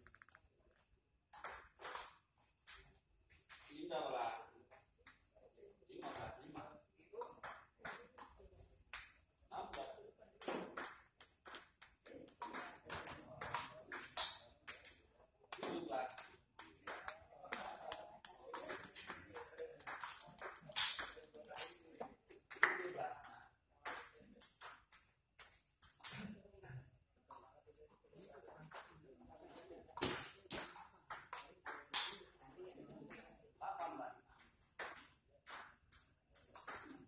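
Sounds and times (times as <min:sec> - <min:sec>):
ping-pong ball clicking off paddles: 0:00.0 - 0:00.4, 0:01.3 - 0:05.3, 0:07.2 - 0:26.4, 0:30.0 - 0:32.3, 0:33.1 - 0:37.0.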